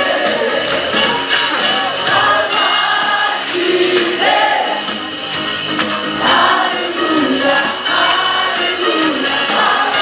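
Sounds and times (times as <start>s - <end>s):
people singing worship song: 0.0s - 5.0s, 6.2s - 10.0s
musical accompaniment: 0.0s - 10.0s.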